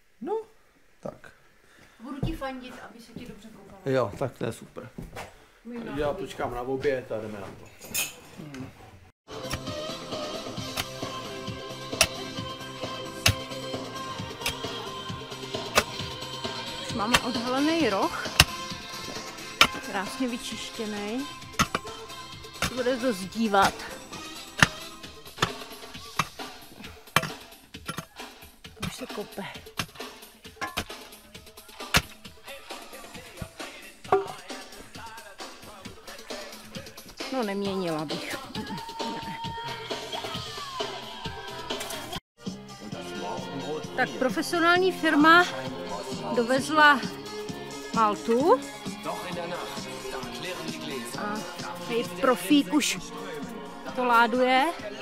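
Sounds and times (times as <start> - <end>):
background music: 9.3 - 55.0
spade digging stony soil: 9.4 - 9.7, 10.6 - 11.2, 11.9 - 12.2, 13.1 - 13.5, 14.3 - 14.8, 15.6 - 16.1, 16.8 - 32.3
pickaxe striking stony soil: 10.7 - 11.1, 12.0 - 12.2, 13.2 - 13.5, 14.4 - 14.8, 15.7 - 16.0, 17.0 - 17.5, 18.2 - 19.9, 21.6 - 21.9, 24.6 - 26.5, 27.1 - 28.2, 29.7 - 31.1, 31.8 - 32.2
sharp spade strikes: 12.0 - 12.2, 14.4 - 14.7, 15.7 - 16.0, 17.0 - 17.5, 18.3 - 18.7, 21.6 - 21.9, 24.6 - 24.8.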